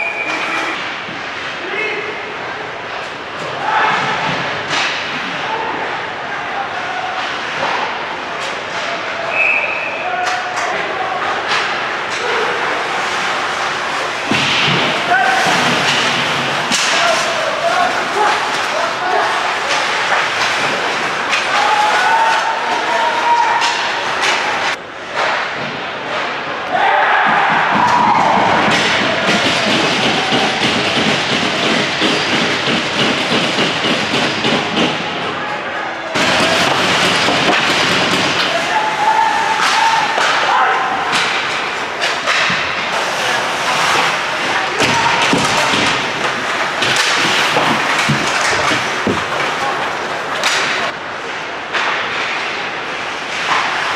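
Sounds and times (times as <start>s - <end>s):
arena crowd hubbub: 0.0s - 53.9s
hockey sticks and puck clacking: 2.9s - 5.6s, 6.8s - 35.4s, 36.1s - 53.9s
people shouting: 14.4s - 20.1s, 21.3s - 24.7s, 26.6s - 31.6s, 35.4s - 42.5s, 44.0s - 48.5s
voices shouting: 21.3s - 24.7s, 38.2s - 42.5s.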